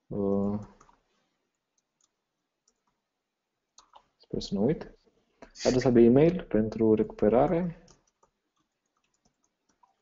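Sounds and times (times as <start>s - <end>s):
computer keyboard clicks: 7.8s - 10.0s.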